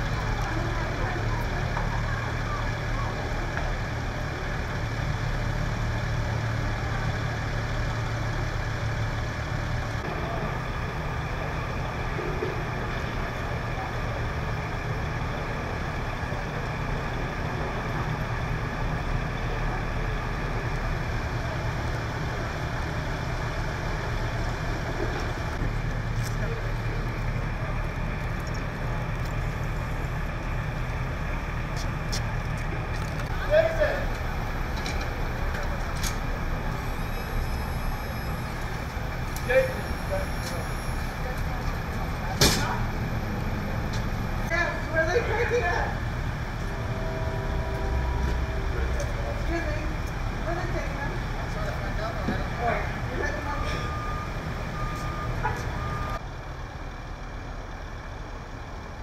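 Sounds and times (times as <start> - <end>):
faint voices: 0.0 - 4.8
heavy vehicle engine idling: 0.0 - 59.0.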